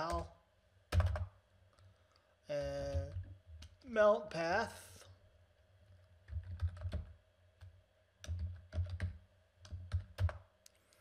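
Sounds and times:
typing on computer keyboard: 0.9s - 1.4s, 6.2s - 10.5s.

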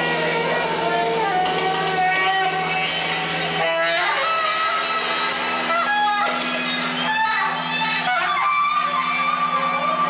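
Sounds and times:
high held note: 0.0s - 10.0s
live band music: 0.0s - 10.0s
low drone with fast pulse: 0.0s - 10.0s.

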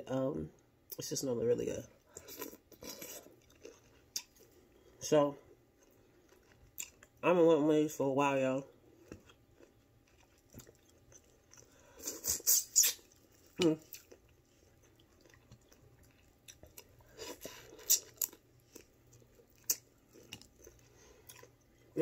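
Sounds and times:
chewing and mouth noises: 2.1s - 5.0s, 5.7s - 7.2s, 8.9s - 22.0s.

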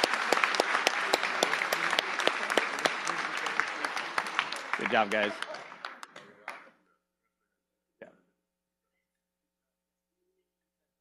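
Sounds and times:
audience applause: 0.0s - 6.7s.

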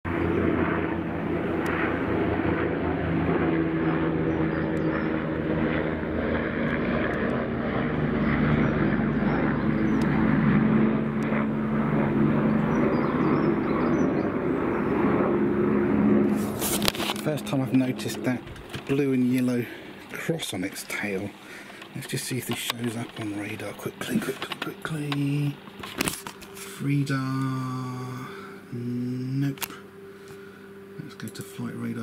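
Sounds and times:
helicopter flying overhead: 0.0s - 32.0s.

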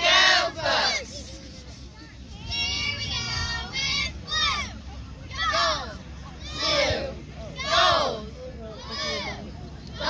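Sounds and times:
cheerleaders chanting in unison: 0.0s - 1.2s, 5.3s - 8.2s.

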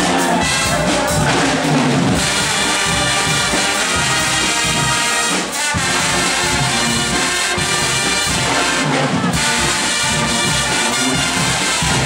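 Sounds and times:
brass band playing loudly: 0.0s - 12.0s
drums: 0.0s - 12.0s.

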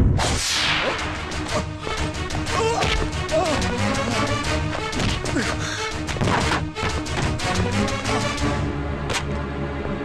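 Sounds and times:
background film score: 0.0s - 10.0s.

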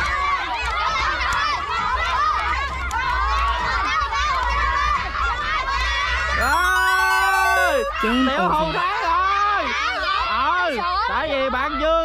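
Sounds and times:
children shouting and cheering: 0.7s - 8.8s.

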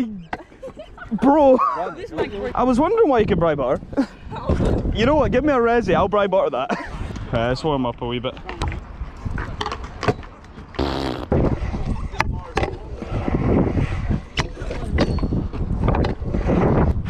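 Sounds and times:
scooter wheels rolling on concrete: 8.1s - 17.0s.

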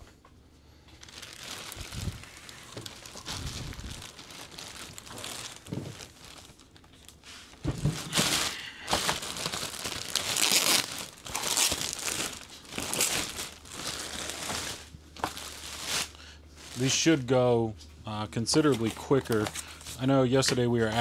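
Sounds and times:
plastic bag crinkling: 0.8s - 17.2s.

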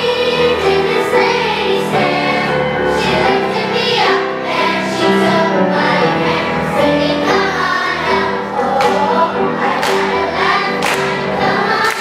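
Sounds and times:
children's choir singing: 0.0s - 12.0s
piano accompaniment: 0.0s - 12.0s.

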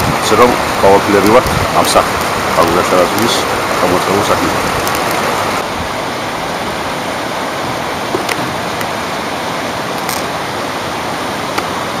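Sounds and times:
water rushing through channels: 0.0s - 12.0s.

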